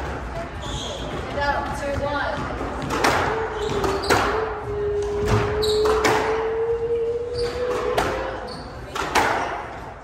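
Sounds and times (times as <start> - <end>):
squash ball hitting racquets and walls: 0.0 - 10.0.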